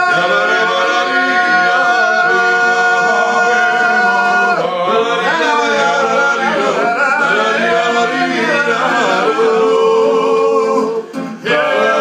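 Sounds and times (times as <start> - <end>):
men singing unaccompanied: 0.0 - 12.0.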